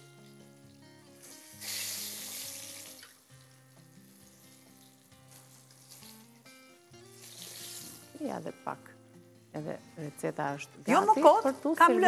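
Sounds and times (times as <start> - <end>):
vegetable slices sizzling in oil: 0.0 - 8.8
quiet background music: 0.0 - 12.0.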